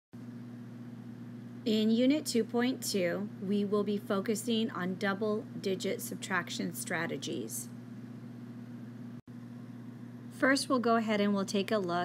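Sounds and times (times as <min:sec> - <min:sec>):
low electrical hum with hiss: 0:00.2 - 0:12.0.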